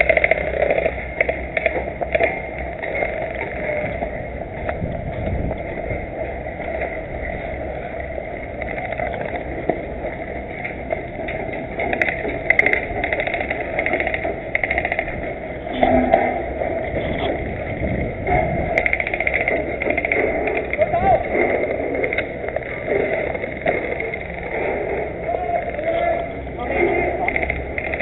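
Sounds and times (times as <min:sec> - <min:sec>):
wind rumble on microphone: 0:00.0 - 0:28.0
distant voices calling out: 0:12.4 - 0:27.8.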